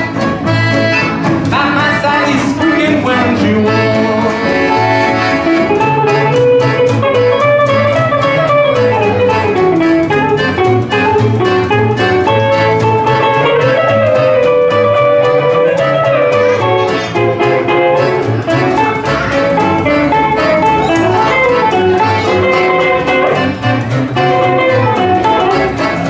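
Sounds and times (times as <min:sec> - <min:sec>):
accordion melody: 0:00.0 - 0:26.0
acoustic guitars strummed: 0:00.0 - 0:26.0
upright bass walking: 0:00.0 - 0:26.0.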